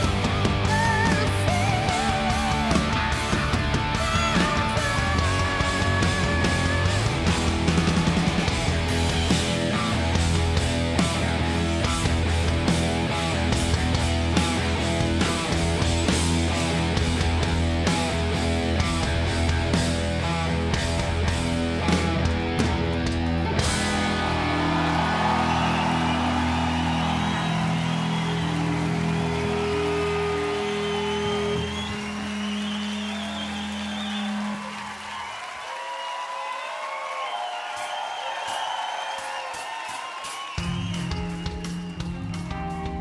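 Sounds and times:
crowd cheering and whistling: 0.0 - 43.0.

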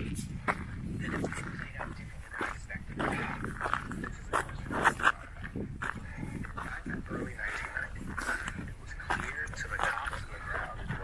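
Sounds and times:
footsteps crunching on rocky ground: 0.0 - 11.0.

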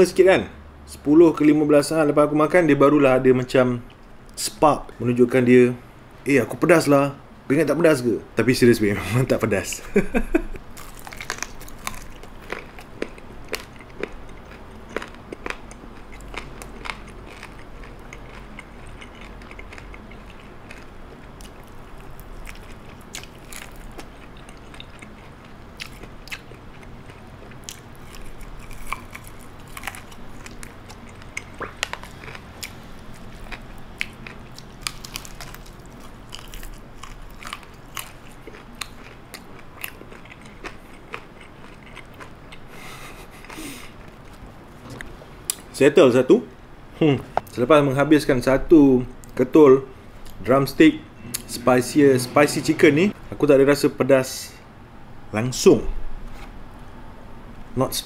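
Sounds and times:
person chewing crispy chicken: 10.0 - 45.6.

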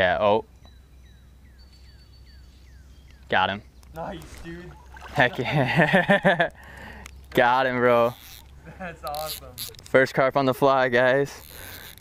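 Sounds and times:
whistled bird calls: 0.5 - 3.8.

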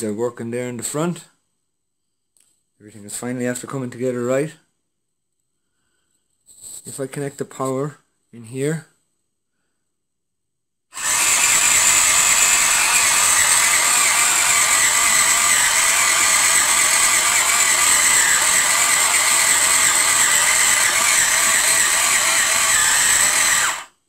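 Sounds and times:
small electric motor running: 11.0 - 23.9.

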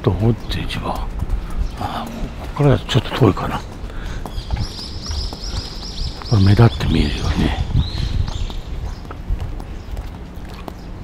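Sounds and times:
soft footsteps on pavement: 0.0 - 11.0.

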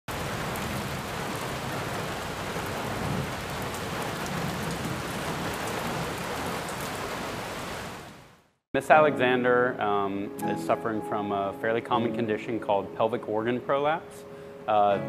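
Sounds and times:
heavy rain: 0.1 - 8.5.

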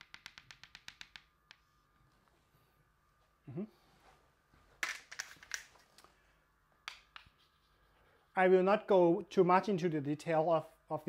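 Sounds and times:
chalk tapping on blackboard: 0.0 - 1.6, 6.9 - 7.8.

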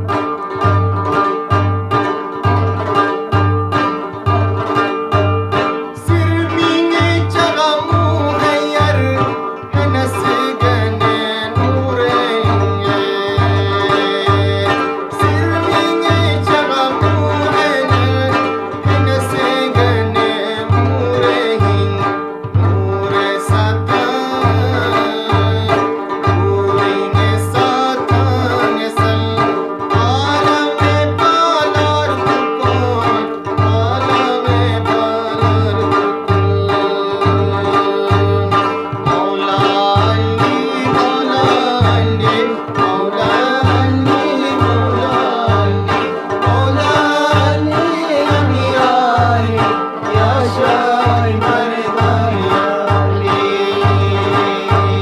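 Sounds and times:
plucked strings melody: 0.0 - 55.0
person singing: 5.8 - 55.0.

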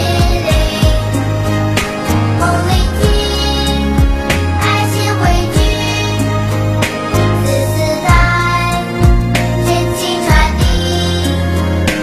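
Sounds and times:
instrumental music with bass: 0.0 - 12.0.

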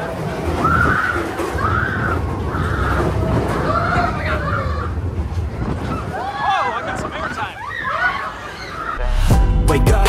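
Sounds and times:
roller coaster train rumbling: 0.0 - 9.0
riders whooping and screaming: 0.6 - 5.1, 5.8 - 9.0.

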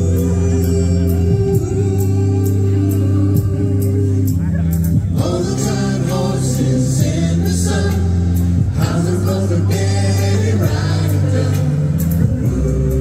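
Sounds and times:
sustained bass notes: 0.0 - 13.0
voices singing: 0.0 - 13.0.

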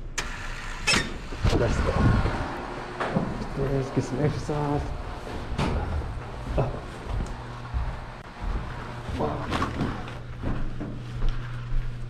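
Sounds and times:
steady low hum: 1.2 - 12.0
footsteps on carpeted stairs: 3.0 - 12.0.

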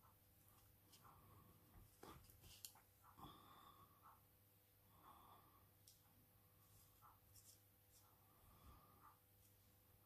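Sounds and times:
brush strokes on paper: 6.5 - 10.0.

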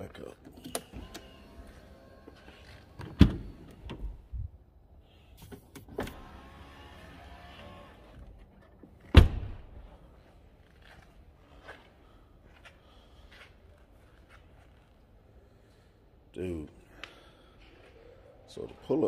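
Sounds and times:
power window motor whirring: 0.8 - 4.2, 6.0 - 8.3
car door thumping shut: 9.1 - 9.7.

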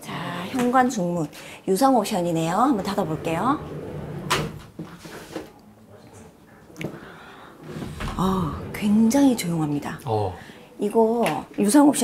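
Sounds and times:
sliding door swish: 2.8 - 5.5.

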